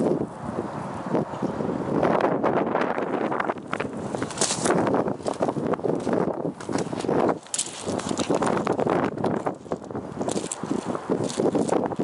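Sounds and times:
wind buffeting microphone: 0.0s - 12.0s
footsteps on gravel: 3.6s - 12.0s.

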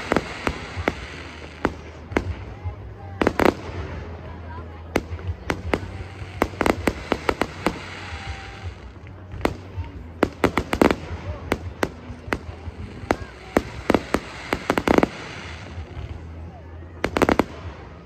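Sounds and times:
fireworks bangs: 0.0s - 4.2s, 4.8s - 16.4s.

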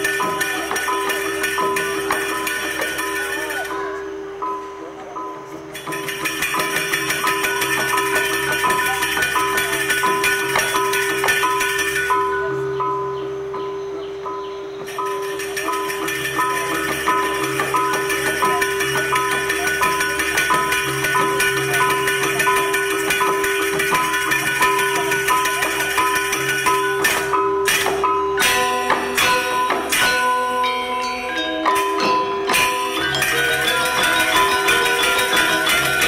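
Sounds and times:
gamelan playing: 0.0s - 36.0s.

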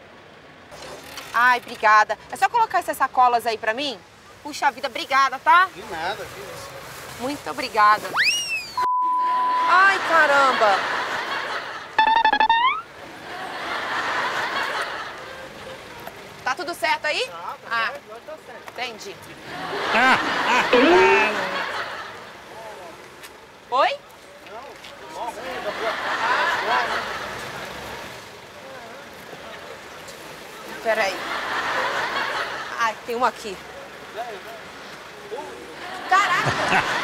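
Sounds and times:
comic repeated notes: 12.0s - 12.9s, 20.8s - 21.3s.

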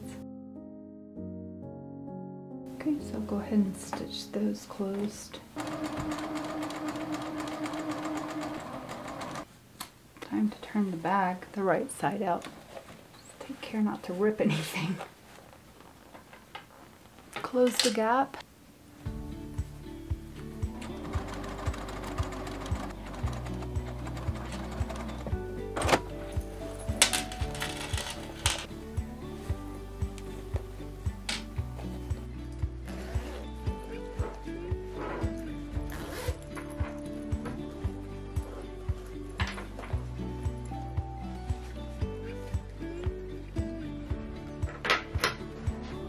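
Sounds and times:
sewing machine stitching: 5.6s - 9.5s, 20.8s - 25.3s
background music with steady beat: 19.0s - 46.0s.

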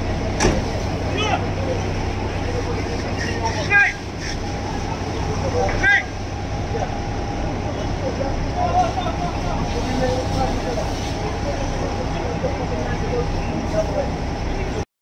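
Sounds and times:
low engine drone: 0.0s - 14.8s
people talking and calling out: 0.0s - 14.8s.

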